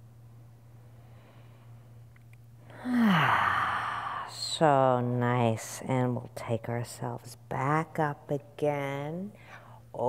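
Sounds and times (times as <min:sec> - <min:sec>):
woman sighing: 0:02.7 - 0:04.3.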